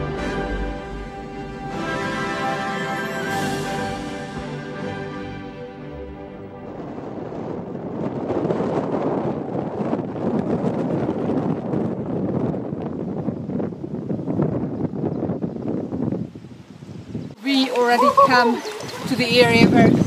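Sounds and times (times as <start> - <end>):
wind blowing across microphone: 5.8 - 20.0.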